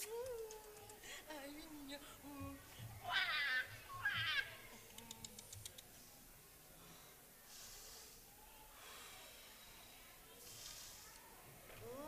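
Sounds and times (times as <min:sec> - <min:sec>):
light ticks: 0:00.0 - 0:01.1.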